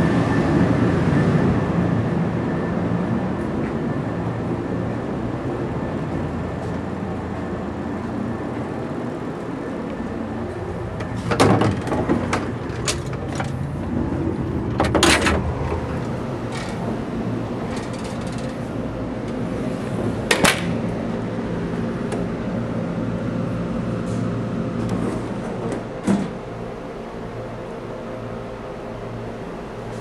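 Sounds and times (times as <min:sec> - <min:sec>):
train car hum and rumble: 0:00.0 - 0:30.0.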